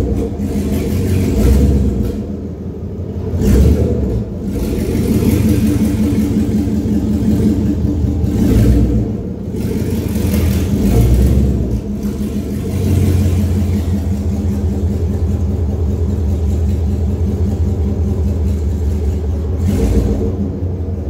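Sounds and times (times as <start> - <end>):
pickup truck engine revving: 0.0 - 21.0.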